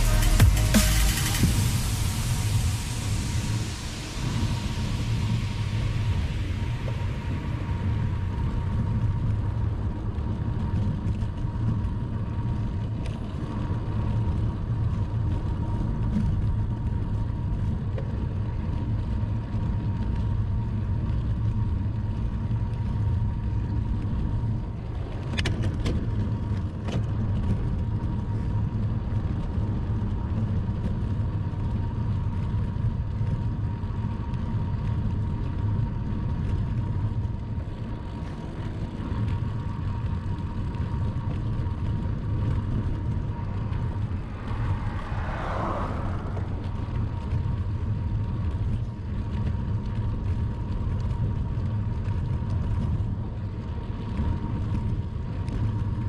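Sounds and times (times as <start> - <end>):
wind buffeting microphone: 1.4 - 56.0
bicycle tyres rolling on asphalt: 2.5 - 56.0.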